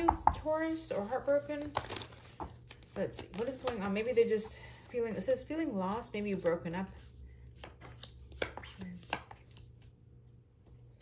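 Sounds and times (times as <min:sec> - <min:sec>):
cards snapping on a table: 0:07.6 - 0:09.6.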